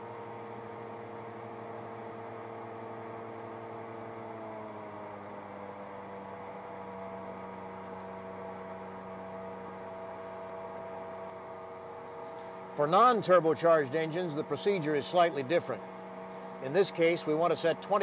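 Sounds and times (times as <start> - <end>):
twin piston aircraft engines droning: 0.0 - 18.0.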